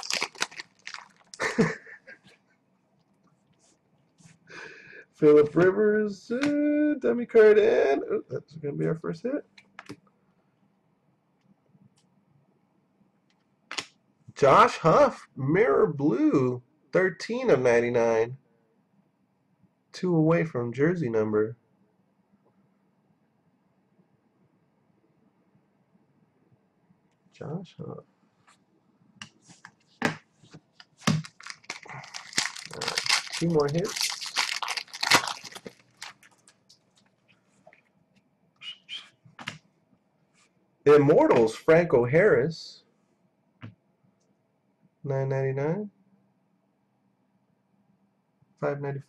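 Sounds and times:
foil wrapper tearing and crinkling: 0.0 - 1.6, 31.1 - 36.6.

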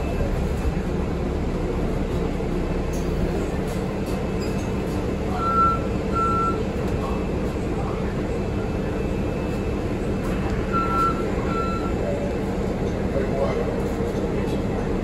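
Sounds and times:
bus diesel engine humming: 0.0 - 15.0.

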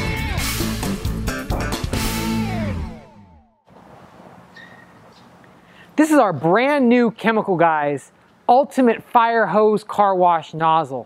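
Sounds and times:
guitar background music: 0.0 - 3.6
faint outdoor background noise: 3.7 - 11.0.

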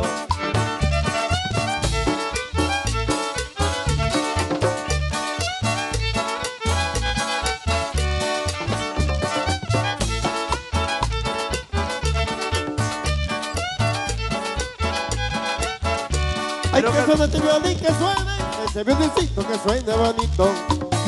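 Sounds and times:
bowed violin melody: 0.0 - 18.3
drums: 0.0 - 21.0
plucked upright bass: 0.0 - 21.0
strummed acoustic guitar: 0.0 - 21.0.

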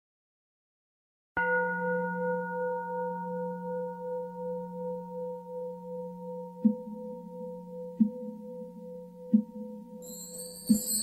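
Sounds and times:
singing bowl ringing: 1.4 - 11.0.

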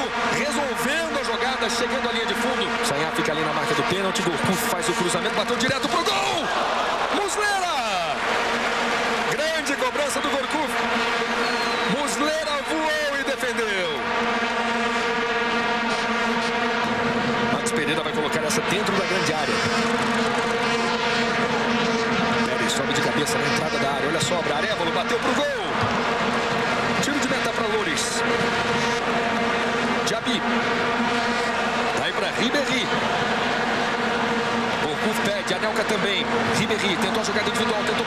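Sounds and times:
stadium crowd noise: 0.0 - 38.0
vuvuzela horns droning: 0.0 - 38.0.

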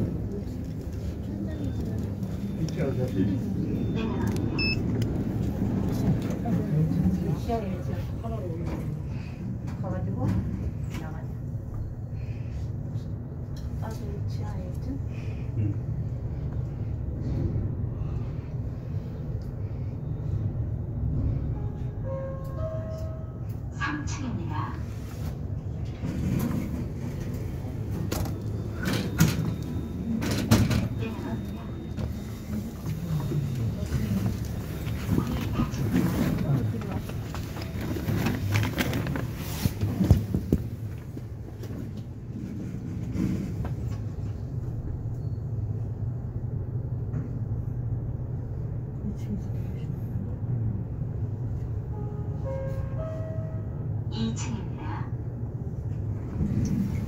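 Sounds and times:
elevator low rumble: 0.0 - 57.0.

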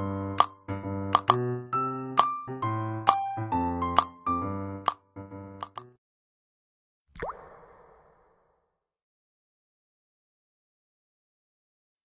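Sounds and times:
click and upward-sliding pop: 0.4 - 1.4, 5.6 - 5.9.

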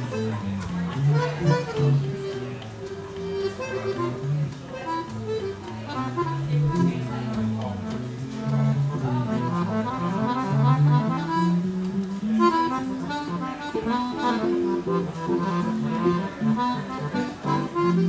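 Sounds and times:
accordion: 0.0 - 18.0.

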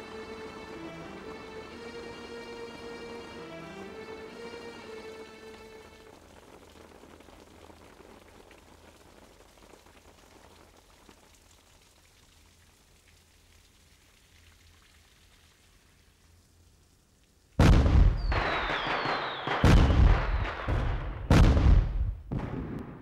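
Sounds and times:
background music: 0.0 - 6.2
faint hiss: 0.0 - 21.3.

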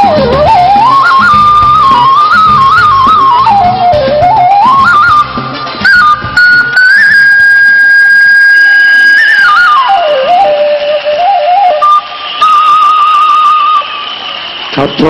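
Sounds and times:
bamboo flute melody: 0.0 - 15.0.

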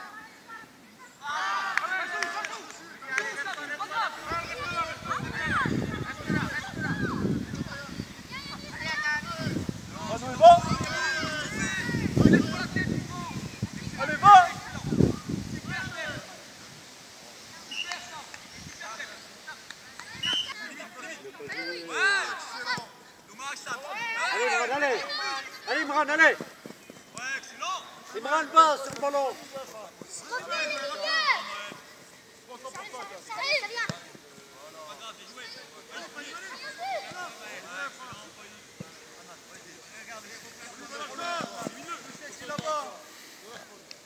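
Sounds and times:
people shouting and calling out: 0.0 - 16.6, 17.6 - 43.9.

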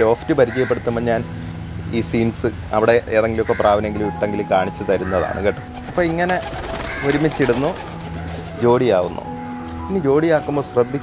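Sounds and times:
pigeons cooing: 5.0 - 8.6.

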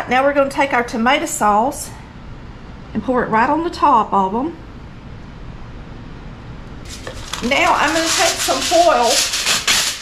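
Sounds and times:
kitchen room noise: 0.0 - 2.1, 6.6 - 10.0.

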